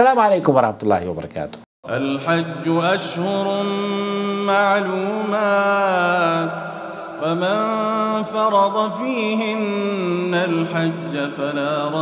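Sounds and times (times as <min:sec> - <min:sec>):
man speaking: 0:00.0 - 0:01.6
man chanting melodically: 0:00.0 - 0:12.0.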